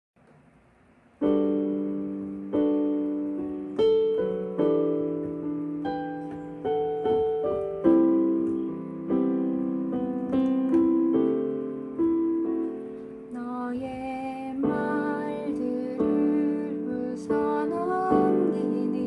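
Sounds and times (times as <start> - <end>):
piano chords: 1.0 - 19.0.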